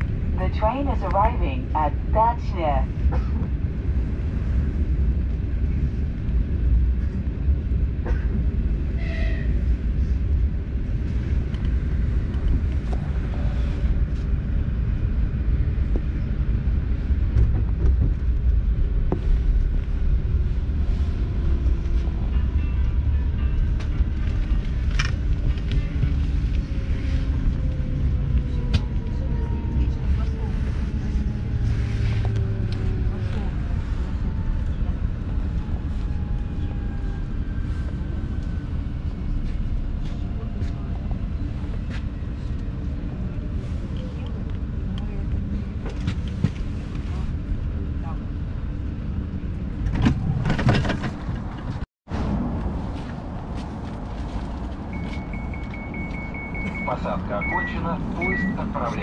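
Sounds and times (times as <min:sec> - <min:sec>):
train wheels rumbling on track: 0:00.0 - 0:58.9.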